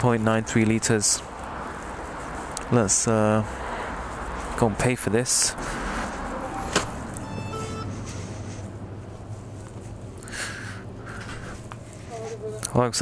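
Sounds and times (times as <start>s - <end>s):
faint tones: 6.4s - 8.2s.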